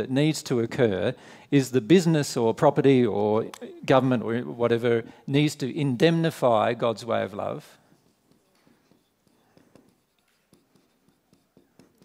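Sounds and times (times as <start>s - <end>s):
marker pen writing on whiteboard: 7.4s - 12.0s.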